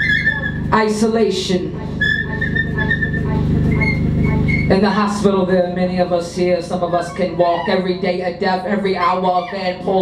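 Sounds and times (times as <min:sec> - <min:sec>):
dense low electronic drone: 0:00.0 - 0:08.7
high held whistle-like tone: 0:02.0 - 0:04.7.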